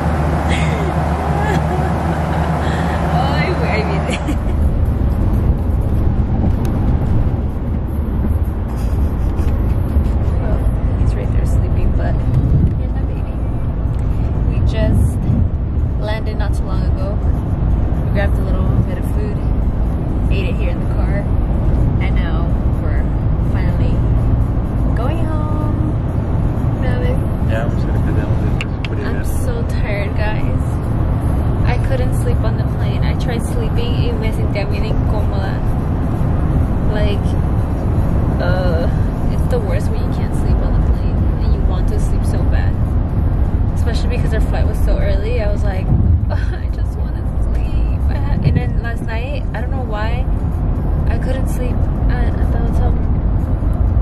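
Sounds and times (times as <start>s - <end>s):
car interior rumble: 0.0s - 54.0s
people talking quietly: 26.8s - 30.6s.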